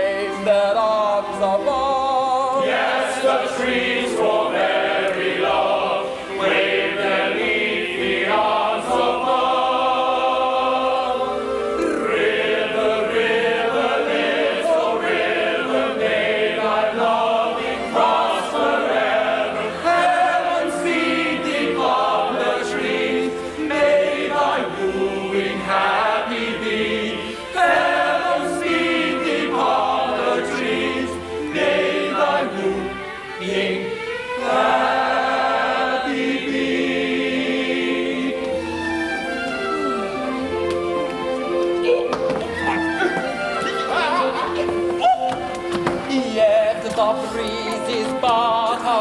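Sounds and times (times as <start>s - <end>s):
chorus singing in harmony: 0.0s - 41.1s, 42.6s - 49.0s
light orchestral accompaniment: 0.0s - 49.0s.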